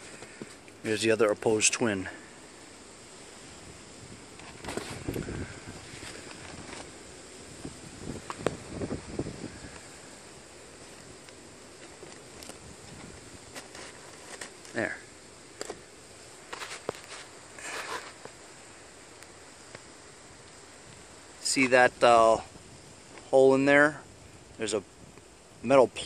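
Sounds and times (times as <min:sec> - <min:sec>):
wind noise on microphone: 0:03.5 - 0:10.1, 0:12.4 - 0:13.6.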